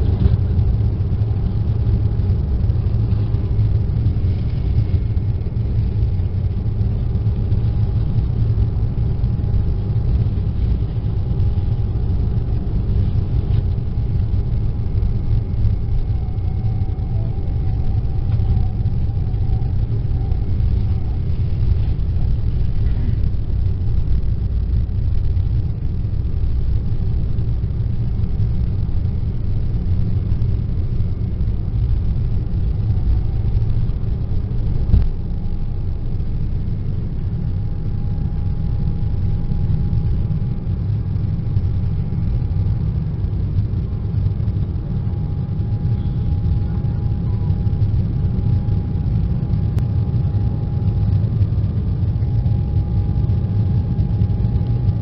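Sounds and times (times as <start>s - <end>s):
jet engine rumble in cabin: 0.0s - 55.0s.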